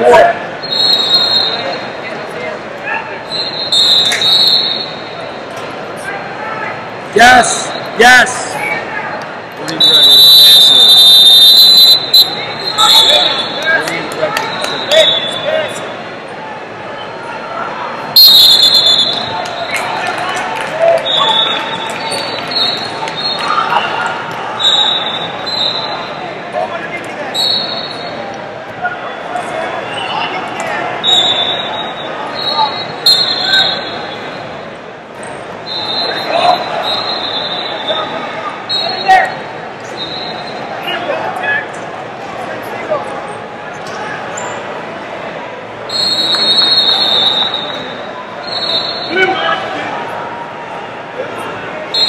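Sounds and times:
crowd voices and shouting: 0:00.0 - 0:52.0
referee whistle blasts: 0:00.6 - 0:01.9, 0:03.3 - 0:05.0, 0:09.8 - 0:13.6, 0:14.4 - 0:15.9, 0:18.2 - 0:19.8, 0:21.0 - 0:21.8, 0:24.6 - 0:26.1, 0:27.3 - 0:28.2, 0:31.0 - 0:34.6, 0:35.6 - 0:40.6, 0:45.9 - 0:49.4.

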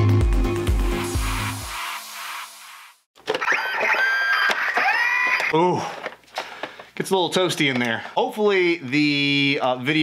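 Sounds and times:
high electronic tones and whines: 0:01.1 - 0:05.5.

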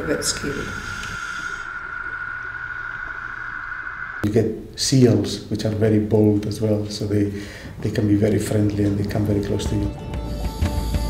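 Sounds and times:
high-pitched whine: 0:00.0 - 0:05.5
low even hum: 0:00.0 - 0:05.7.

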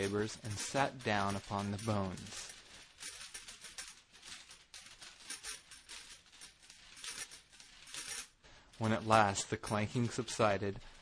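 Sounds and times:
metal chain rattling: 0:00.0 - 0:10.7.

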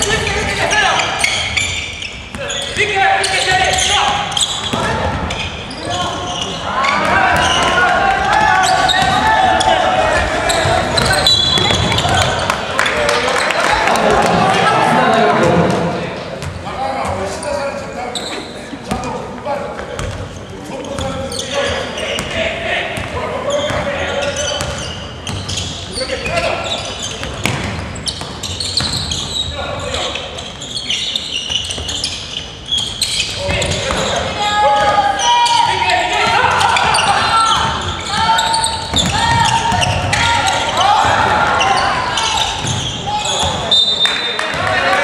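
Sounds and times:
voices calling out in gymnasium: 0:00.0 - 0:45.0.

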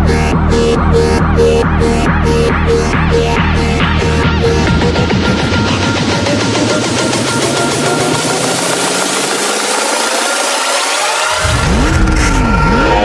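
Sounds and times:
heavy bass: 0:00.0 - 0:13.0
rising synth sweep: 0:00.0 - 0:13.0
swooping synth note: 0:00.0 - 0:13.0.

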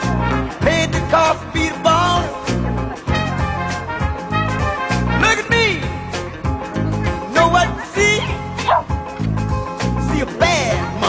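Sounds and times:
funk music with bass beat: 0:00.0 - 0:11.0
dog barking: 0:08.2 - 0:09.0.

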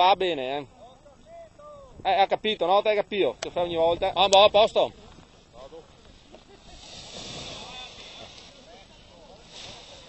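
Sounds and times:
distant voices talking: 0:03.0 - 0:10.0.

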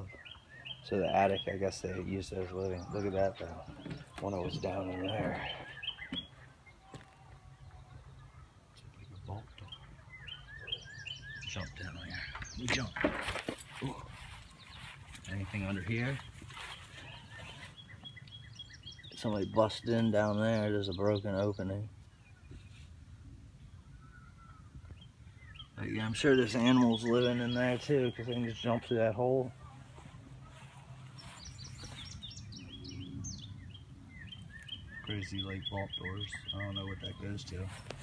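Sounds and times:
birds chirping faintly: 0:00.0 - 0:38.0.

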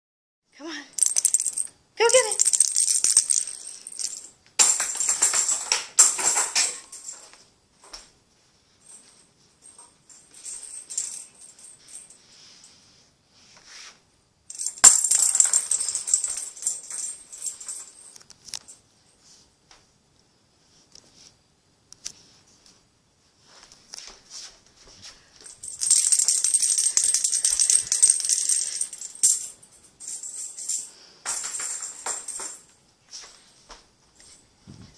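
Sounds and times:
small bell jingling: 0:00.9 - 0:07.4, 0:14.5 - 0:18.2, 0:25.4 - 0:32.7.

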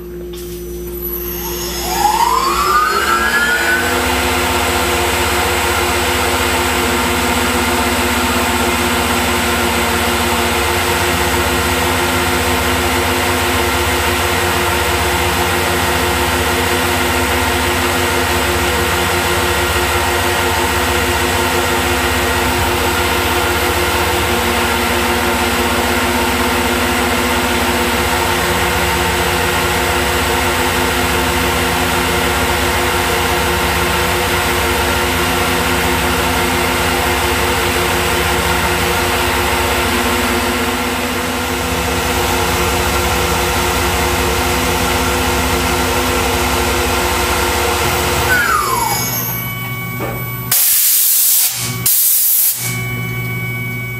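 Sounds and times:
milling machine drone: 0:00.0 - 0:53.9.

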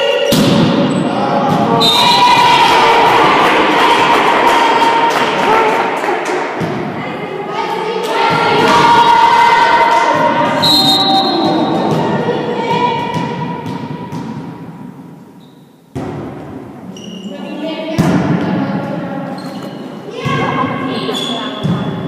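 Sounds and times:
crowd shouting and cheering: 0:00.0 - 0:13.6.

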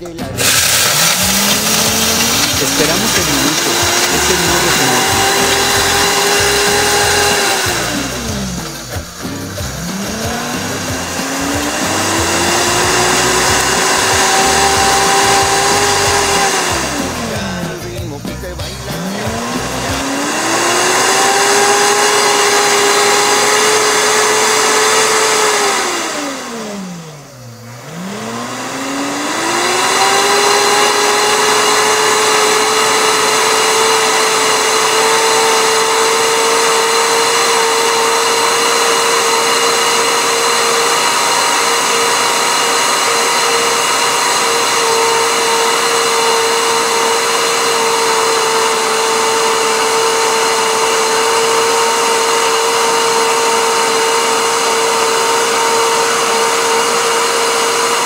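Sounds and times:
blender motor grinding: 0:00.0 - 0:58.0.

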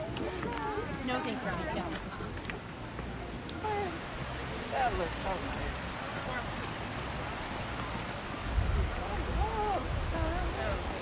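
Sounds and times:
water rushing over rocks: 0:00.0 - 0:11.0
wind rumble on microphone: 0:05.2 - 0:11.0.

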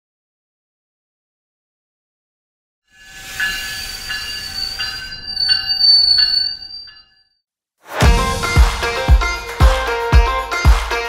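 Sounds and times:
high-pitched train squeal: 0:03.0 - 0:07.2
train warning bell ringing: 0:03.0 - 0:07.2.

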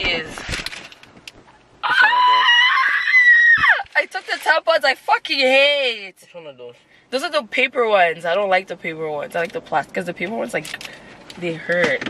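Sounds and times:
woman screaming: 0:01.8 - 0:04.0.

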